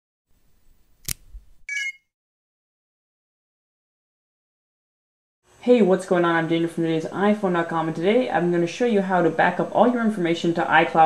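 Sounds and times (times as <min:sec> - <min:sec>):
sharp click: 0:01.0 - 0:01.4
bright high chime: 0:01.7 - 0:02.0.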